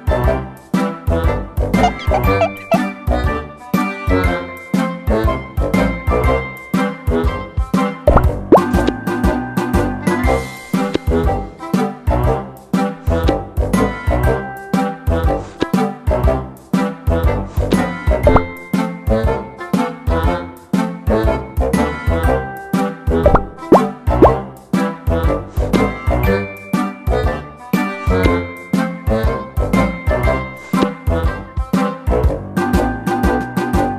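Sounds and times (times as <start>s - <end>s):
upbeat background music: 1.4s - 3.5s, 7.2s - 33.9s
upbeat swing music: 1.6s - 3.3s
rising pops sound effect: 1.8s - 2.8s, 8.1s - 9.0s, 18.2s - 18.6s, 23.2s - 24.4s.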